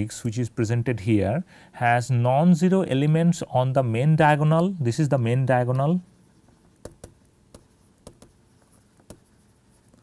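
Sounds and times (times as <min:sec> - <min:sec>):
stylus tapping on pen tablet: 0:06.8 - 0:08.4, 0:09.0 - 0:09.3.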